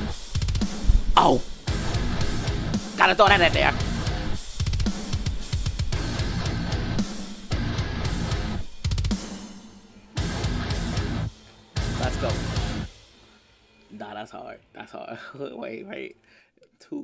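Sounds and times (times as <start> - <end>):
heavy metal music: 0.0 - 13.3.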